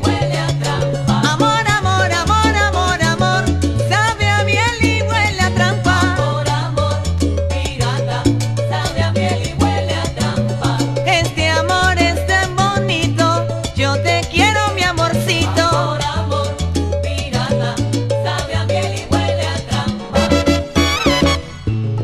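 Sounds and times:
salsa band music: 0.0 - 22.0.

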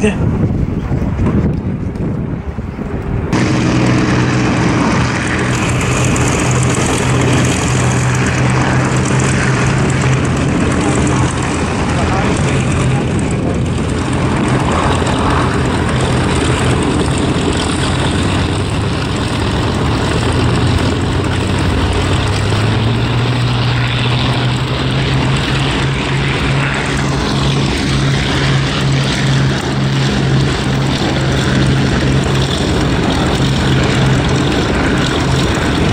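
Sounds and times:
propeller plane engines droning: 0.0 - 35.9.

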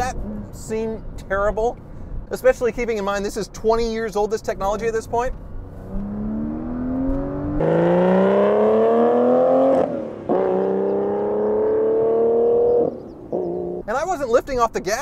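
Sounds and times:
car engine accelerating hard: 5.8 - 13.8.

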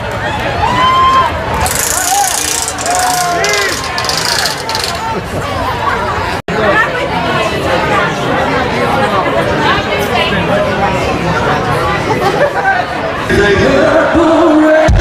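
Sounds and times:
crowd babble: 0.0 - 15.0.

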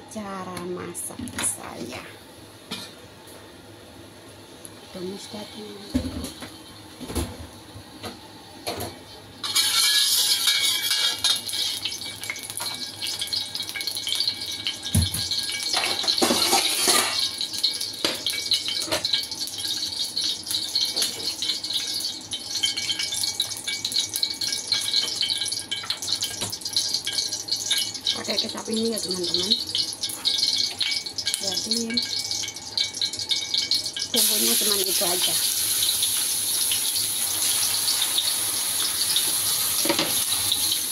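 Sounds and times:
cooking oil sizzling and crackling: 4.4 - 40.9.

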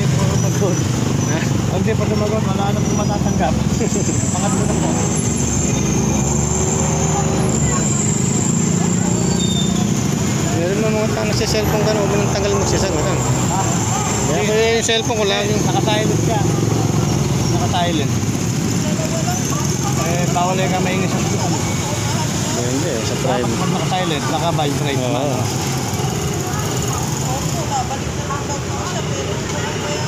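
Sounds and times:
passing vehicle engine: 0.0 - 30.0
street traffic noise: 0.0 - 30.0.

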